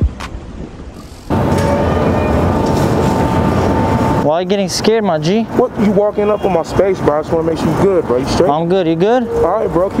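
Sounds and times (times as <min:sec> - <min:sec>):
traffic rumble: 0:00.4 - 0:10.0
faint steady whine: 0:01.0 - 0:06.7
intro music sting: 0:01.3 - 0:04.4.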